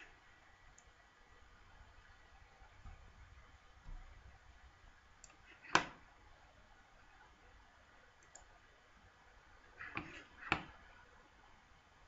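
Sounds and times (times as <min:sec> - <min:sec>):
computer mouse click: 0:05.2 - 0:06.0, 0:08.2 - 0:08.5.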